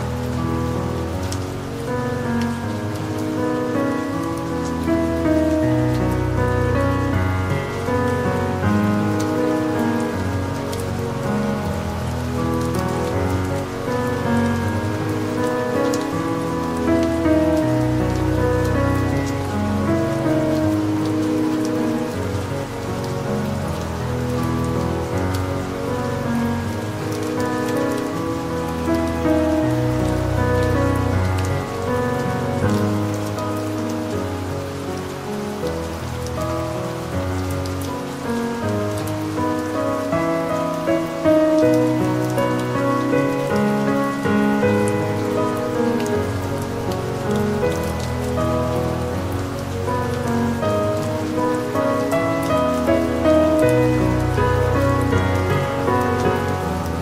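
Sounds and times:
calm piano music: 0.0s - 57.0s
soft rain: 0.0s - 57.0s.

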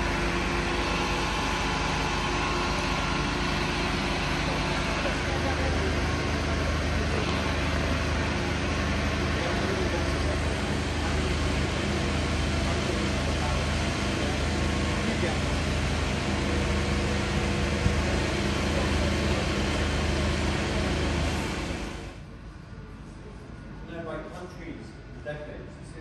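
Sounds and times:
mechanical engine hum: 0.0s - 26.0s.

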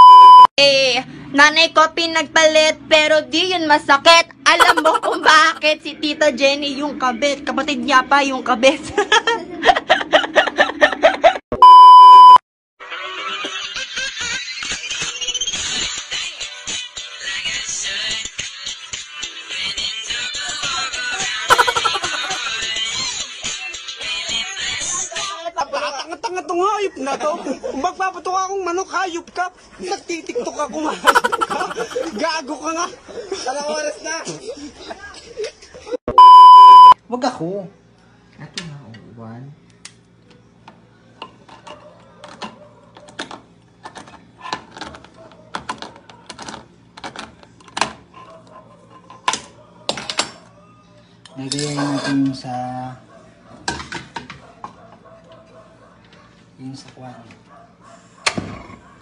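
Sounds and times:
censor bleep tone: 0.0s - 0.5s, 11.5s - 12.4s, 36.1s - 37.0s
person speaking: 4.5s - 5.6s, 21.5s - 22.4s, 31.0s - 32.2s.

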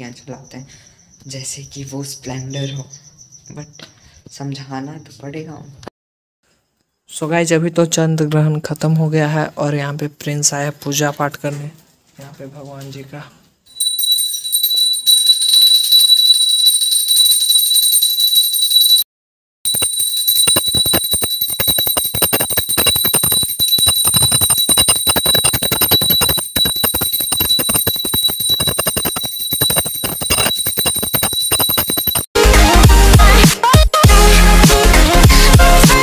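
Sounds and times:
hand bell ringing: 13.7s - 19.0s, 19.7s - 32.3s.

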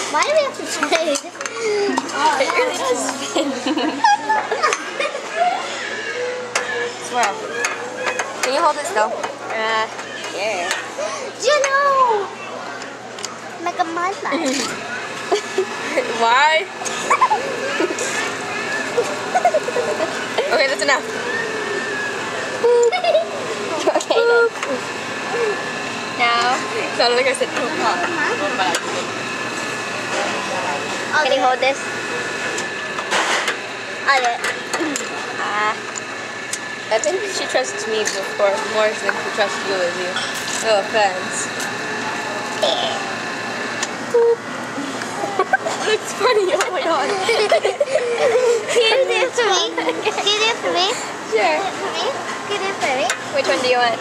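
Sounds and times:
frozen yogurt machine whine: 0.0s - 54.0s
young people chattering: 0.0s - 54.0s
laughter: 3.2s - 5.6s, 17.0s - 18.1s, 19.3s - 20.2s, 22.6s - 24.2s, 45.2s - 45.9s, 47.0s - 49.1s, 49.7s - 50.3s
loud low hum: 12.0s - 54.0s.

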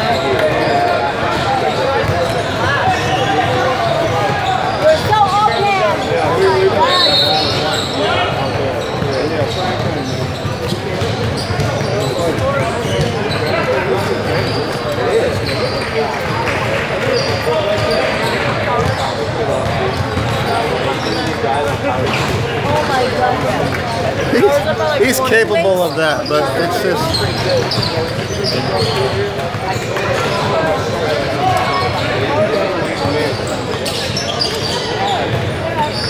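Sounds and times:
indistinct overlapping chatter: 0.0s - 36.0s.

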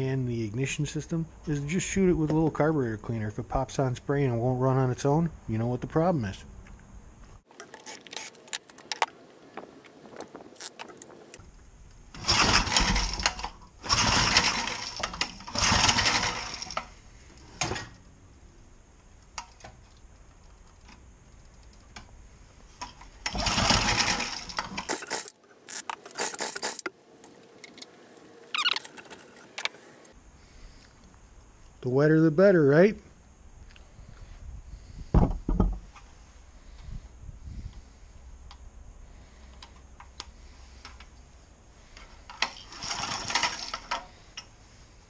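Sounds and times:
engine pull starter cranking: 12.1s - 16.9s, 23.2s - 26.9s, 42.3s - 44.2s.

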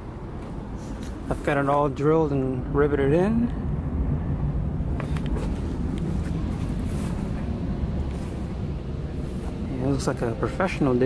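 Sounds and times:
faint hum: 0.0s - 11.0s
steady low rumble: 0.0s - 11.0s.

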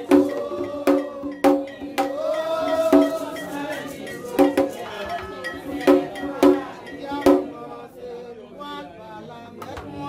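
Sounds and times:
chanted singing: 0.0s - 9.6s
metal bell struck: 1.0s - 7.4s.

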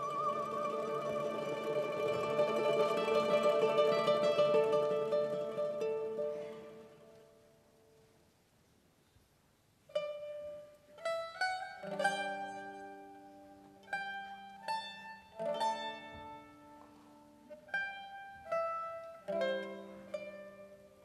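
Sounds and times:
plucked mandolin melody: 0.0s - 7.9s, 9.9s - 21.0s.

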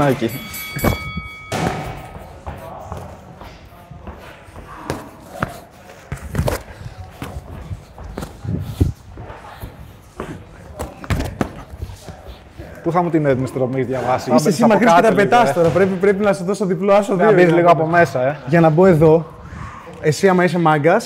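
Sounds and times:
boxing gloves thudding: 9.1s - 12.2s.

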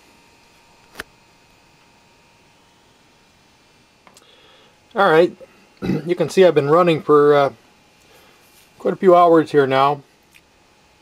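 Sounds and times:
room tone hiss: 0.0s - 11.0s.

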